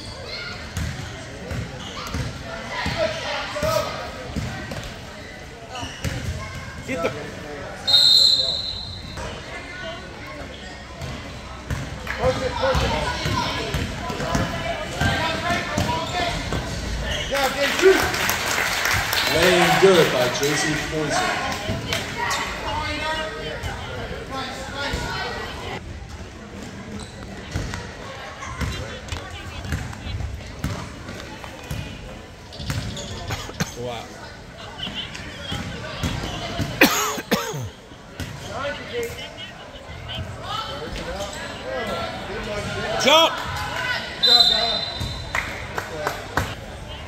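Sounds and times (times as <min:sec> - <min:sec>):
spectators chatting: 0:00.0 - 0:47.0
referee's whistle blast: 0:07.9 - 0:09.2, 0:44.2 - 0:45.2.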